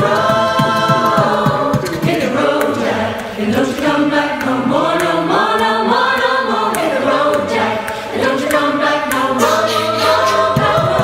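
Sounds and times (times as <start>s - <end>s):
choir singing in harmony: 0.0s - 11.0s.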